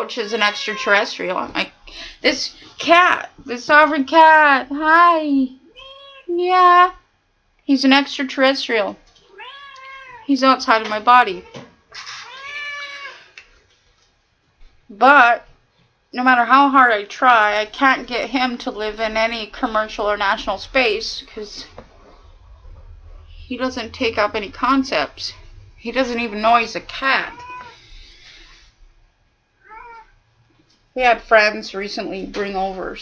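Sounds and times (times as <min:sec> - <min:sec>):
cat meowing: 0:00.3 - 0:01.2, 0:05.7 - 0:06.3, 0:09.2 - 0:10.3, 0:11.4 - 0:13.3, 0:27.2 - 0:27.8, 0:29.6 - 0:30.2.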